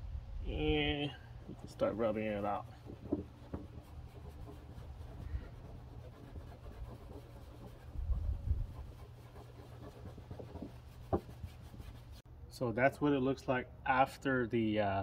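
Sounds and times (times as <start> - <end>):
cloth rubbing on car paint: 0.6 - 12.2.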